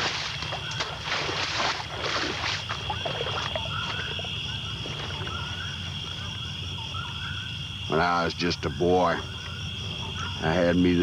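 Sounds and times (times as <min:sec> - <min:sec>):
high insect drone: 0:00.0 - 0:11.0.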